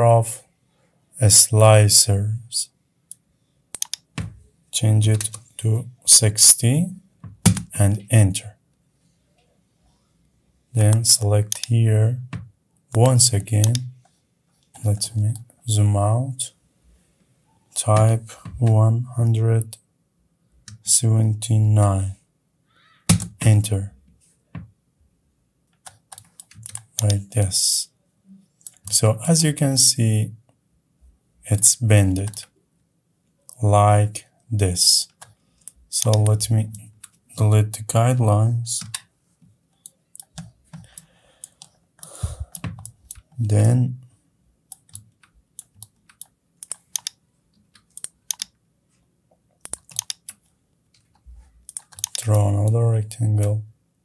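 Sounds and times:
mouse and keyboard clicks: 0:03.8 - 0:04.3, 0:07.5 - 0:07.7, 0:10.8 - 0:11.7, 0:13.0 - 0:13.9, 0:23.1 - 0:23.6, 0:25.8 - 0:27.2, 0:44.7 - 0:48.5, 0:49.6 - 0:50.4, 0:51.0 - 0:52.8
computer keyboard keys clicking: 0:49.7 - 0:50.4, 0:51.7 - 0:52.8.

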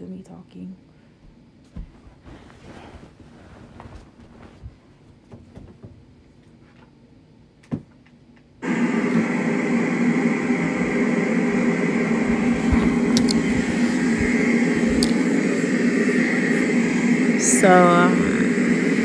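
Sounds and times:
white noise machine hiss: 0:08.6 - 0:19.0.

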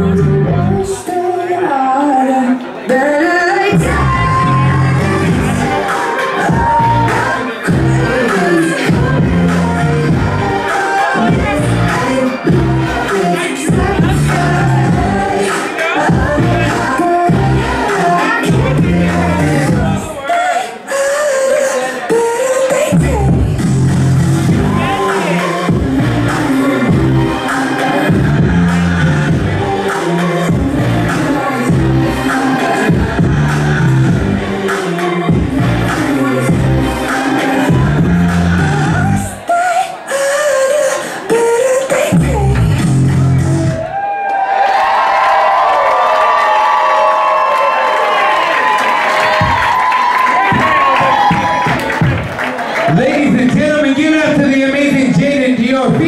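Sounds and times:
pop dance track with sung vocals: 0:00.0 - 0:43.9, 0:49.2 - 0:56.0.

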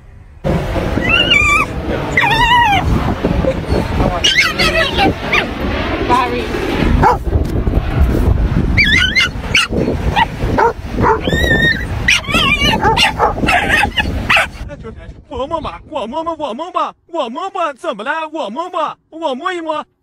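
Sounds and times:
steady low rumble: 0:00.0 - 0:16.6
dog whining and yipping: 0:01.0 - 0:05.5, 0:08.8 - 0:14.6.

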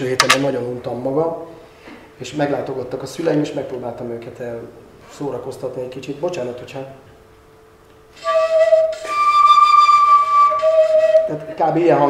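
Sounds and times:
crutch blown like a flute: 0:08.1 - 0:11.7.

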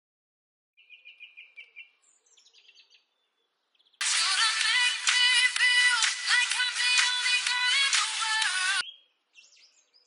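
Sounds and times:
faint birdsong: 0:00.8 - 0:04.0, 0:08.8 - 0:10.0.

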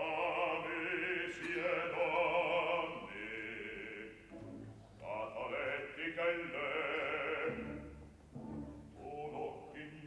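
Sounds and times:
operatic voices singing: 0:00.0 - 0:04.2, 0:05.0 - 0:07.9, 0:08.9 - 0:10.0.

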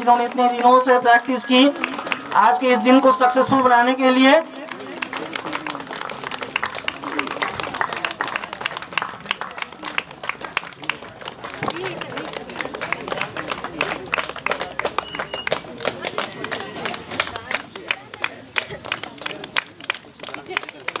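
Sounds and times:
crowd clapping: 0:00.0 - 0:21.0
people talking: 0:00.0 - 0:21.0.

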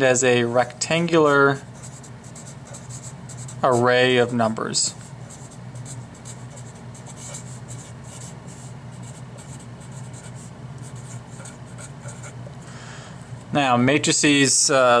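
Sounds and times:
low steady hum: 0:00.0 - 0:15.0
marker scratching on paper: 0:01.6 - 0:12.5.

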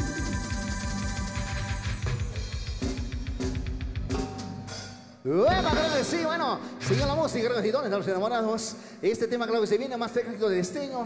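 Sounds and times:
live band playing dance music: 0:00.0 - 0:04.8, 0:05.5 - 0:07.6.

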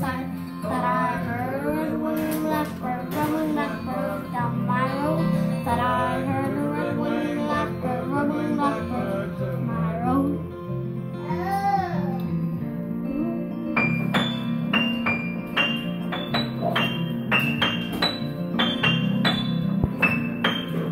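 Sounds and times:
boy singing a folk song: 0:00.0 - 0:10.5, 0:11.2 - 0:12.2
sustained instrumental accompaniment: 0:12.2 - 0:20.9.

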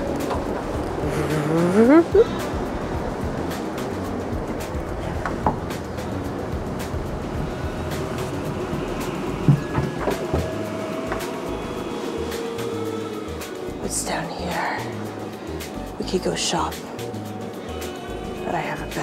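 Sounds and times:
background music with bass line: 0:00.0 - 0:19.0.

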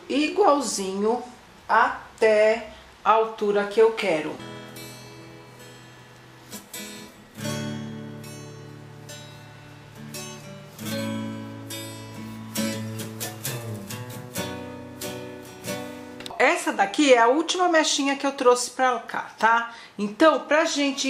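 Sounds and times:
acoustic guitar strumming: 0:04.3 - 0:16.6.

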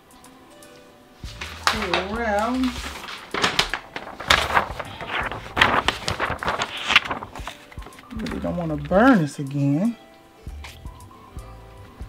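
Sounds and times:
blanket rustling and crinkling: 0:01.2 - 0:09.1.

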